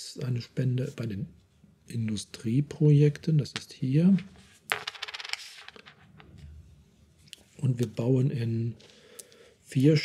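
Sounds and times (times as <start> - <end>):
game tokens clattering: 4.7 - 6.1.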